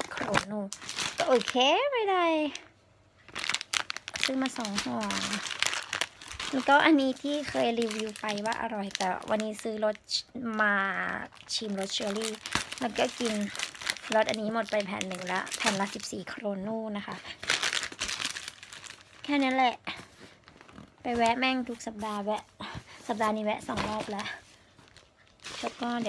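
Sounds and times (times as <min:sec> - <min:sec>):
plastic packets crinkling: 0:00.0 - 0:01.8, 0:02.4 - 0:16.4, 0:17.2 - 0:22.3, 0:23.1 - 0:26.0
person speaking: 0:00.0 - 0:02.7, 0:04.1 - 0:05.6, 0:06.4 - 0:17.3, 0:21.0 - 0:24.5, 0:25.5 - 0:26.0.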